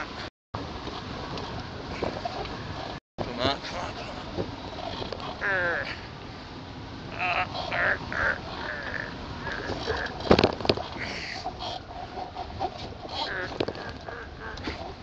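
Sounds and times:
wind rushing over microphone: 0.0 - 15.0.

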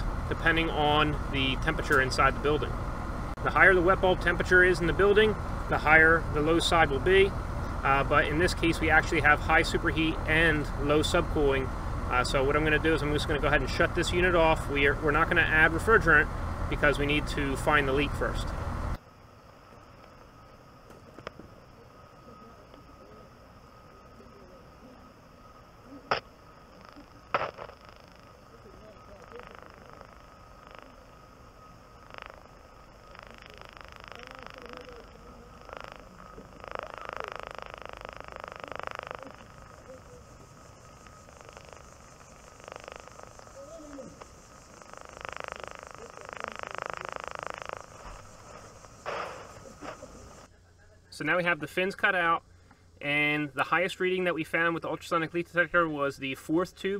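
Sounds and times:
faint steady tone: 0.0 - 56.9
sharp clicks: 27.3 - 28.3
hiss swelling up: 35.6 - 50.5.

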